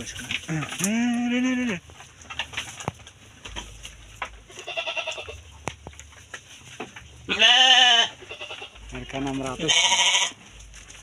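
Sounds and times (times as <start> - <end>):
hooves stepping in straw: 0.0 - 11.0
young sheep bleating: 0.8 - 1.8, 4.6 - 5.4, 7.3 - 8.8, 9.5 - 10.4
sheep calls: 7.3 - 8.9, 9.5 - 10.4.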